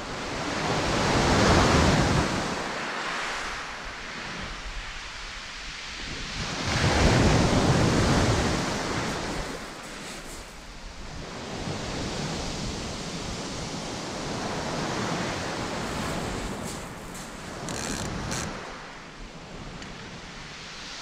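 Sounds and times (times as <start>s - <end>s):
waves breaking on shingle beach: 6.4s - 12.3s, 14.4s - 19.0s.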